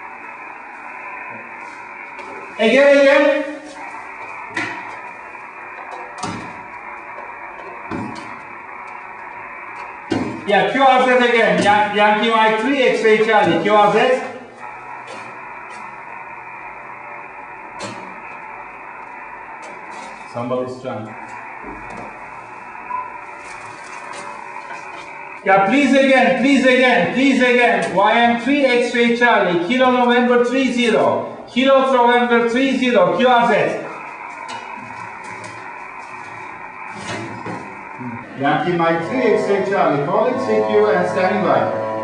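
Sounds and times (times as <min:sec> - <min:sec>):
radio receiver hiss: 0:00.0 - 0:41.4.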